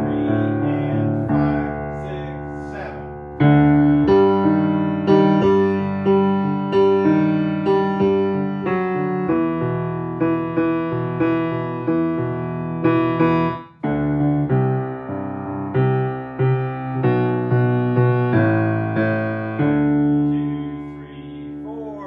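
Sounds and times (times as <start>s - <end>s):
piano chords: 0.0s - 22.0s.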